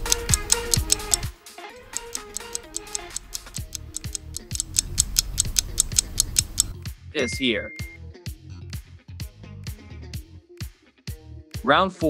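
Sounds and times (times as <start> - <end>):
timer ticking quickly: 0.0 - 1.3, 1.9 - 6.8
background music: 0.0 - 12.0.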